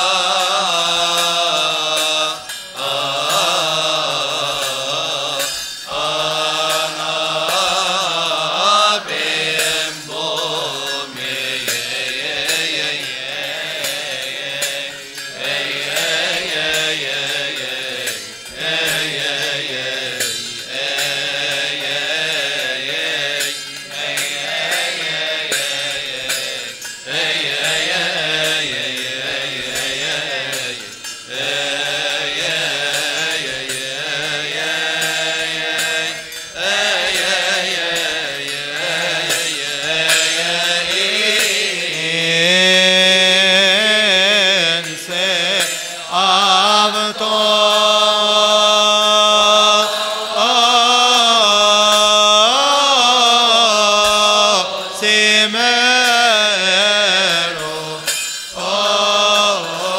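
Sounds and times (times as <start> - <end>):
choir chanting a hymn: 0.0 - 59.9.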